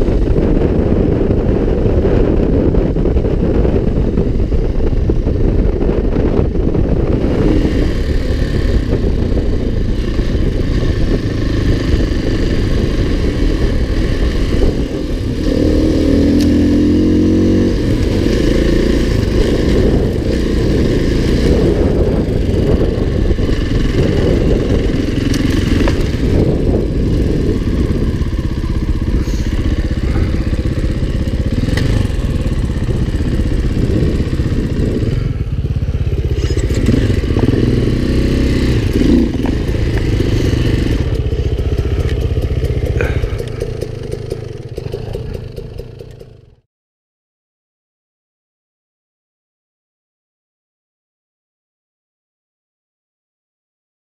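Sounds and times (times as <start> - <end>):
dirt bike engine running: 0.0 - 46.6.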